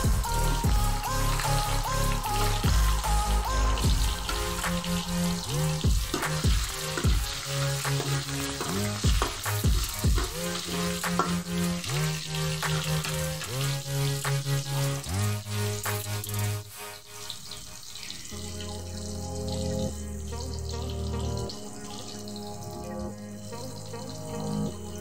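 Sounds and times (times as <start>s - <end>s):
background music with bass: 0.0s - 25.0s
oil sizzling in a pan: 0.0s - 25.0s.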